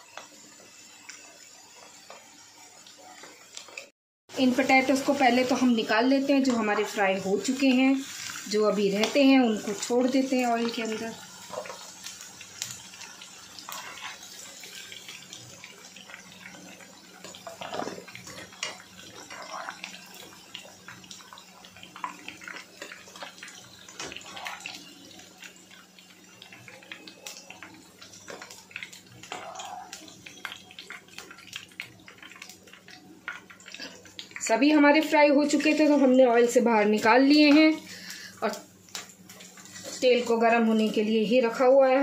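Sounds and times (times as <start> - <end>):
oil crackling and popping: 0.0 - 3.9, 4.8 - 41.6
potatoes deep-frying in oil: 0.0 - 42.0.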